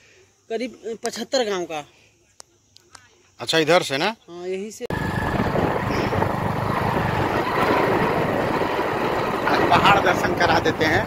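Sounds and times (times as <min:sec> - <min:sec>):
wind noise on microphone: 0:04.9 - 0:09.9
vehicle driving on dirt road: 0:04.9 - 0:11.0.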